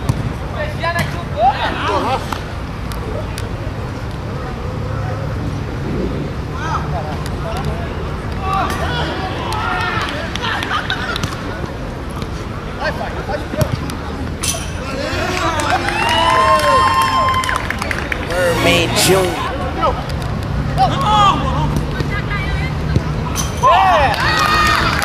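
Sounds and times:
players shouting: 18.3 - 19.5.

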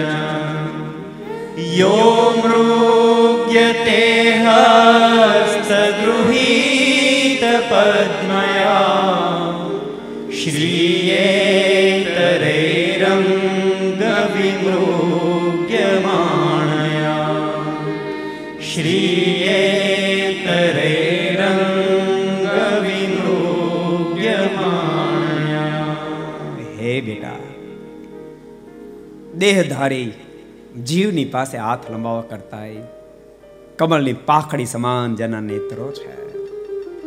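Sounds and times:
man chanting melodically: 26.4 - 27.6.

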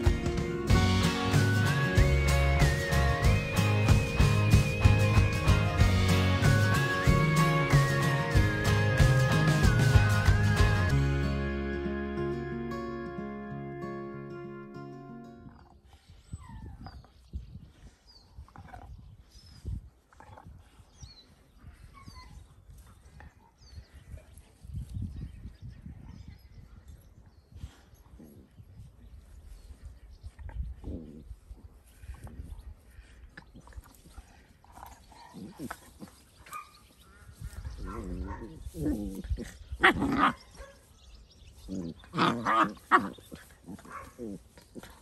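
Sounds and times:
dogs grunting and growling: 27.8 - 28.8, 30.6 - 32.4, 33.1 - 36.4, 37.6 - 40.7, 41.6 - 45.0.

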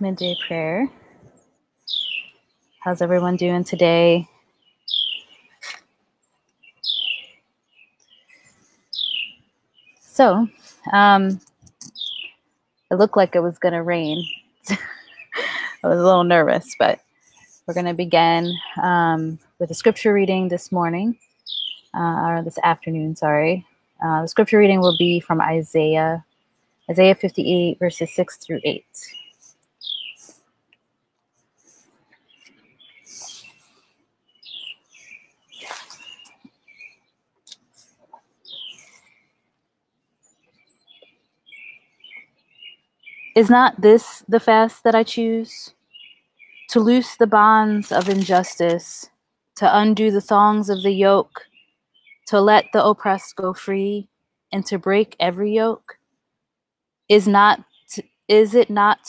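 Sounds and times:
songbird calling: 0.0 - 0.9, 1.9 - 5.8, 6.6 - 10.9, 11.8 - 12.9, 13.9 - 19.3, 21.2 - 22.0, 24.4 - 25.3, 27.0 - 30.4, 32.3 - 33.7, 34.4 - 37.0, 38.4 - 39.1, 40.7 - 43.8, 45.9 - 46.9, 50.5 - 53.1
small birds chirping: 0.0 - 5.8, 6.6 - 30.4, 31.6 - 39.3, 40.2 - 48.9, 49.6 - 53.8, 57.1 - 59.0
faint bird chirps: 1.8 - 3.0, 4.6 - 5.8, 6.6 - 10.9, 24.8 - 25.3, 28.2 - 30.4, 31.7 - 33.7, 34.3 - 37.0, 37.7 - 39.3, 40.6 - 43.8
rustling: 35.0 - 39.2.

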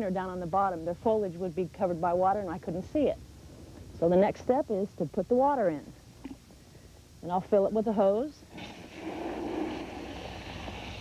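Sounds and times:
hose water splashing into pond: 8.5 - 11.0.

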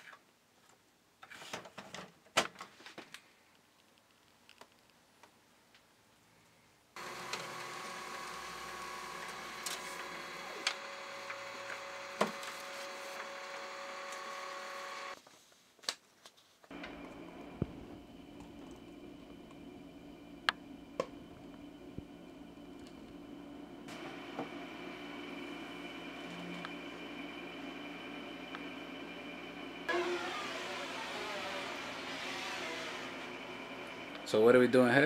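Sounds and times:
steady mechanical hum: 7.0 - 15.2, 16.7 - 35.0.

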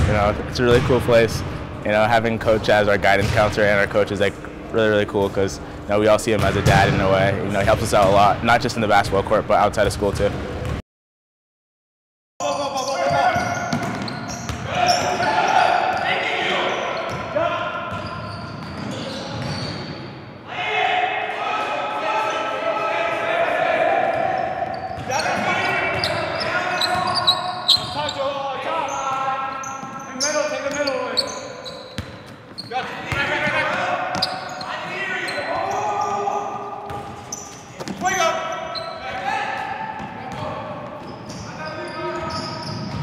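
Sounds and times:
players' voices: 0.0 - 10.5, 12.4 - 19.8, 20.5 - 43.0
sneakers squeaking on hardwood: 12.5 - 20.1, 24.1 - 43.0
basketball bouncing: 13.4 - 14.7, 32.0 - 32.4, 36.9 - 37.2.

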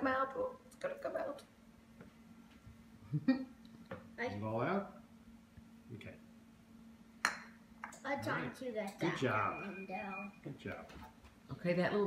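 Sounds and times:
oven electronic beep: 9.0 - 10.5.

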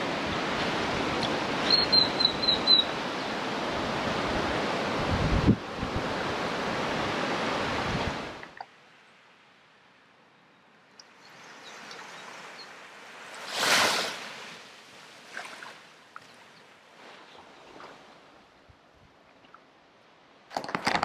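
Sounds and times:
small waves washing on sand: 0.0 - 8.6, 11.0 - 18.5.

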